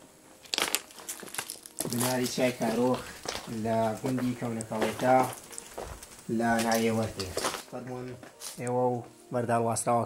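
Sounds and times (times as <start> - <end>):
footsteps crunching on gravel: 0.4 - 9.2.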